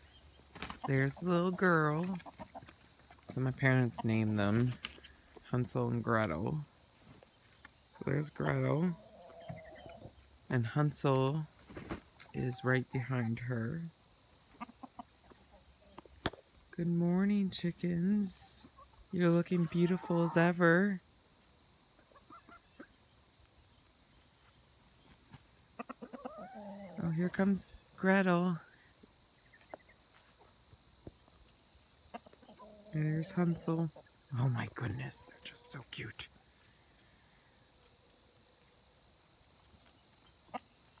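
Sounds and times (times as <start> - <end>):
chickens clucking: 0.0 - 41.0
chicken drawn-out call: 8.9 - 10.2, 25.7 - 27.1, 32.1 - 33.6.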